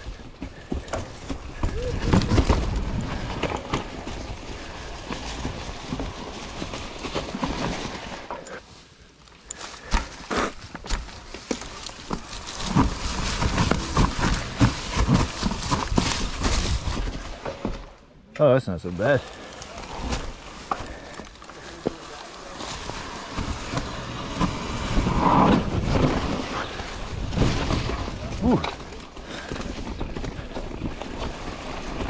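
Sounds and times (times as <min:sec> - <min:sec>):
bike knocks and rattles: 0:00.0 - 0:08.6, 0:09.5 - 0:18.0, 0:19.8 - 0:32.0.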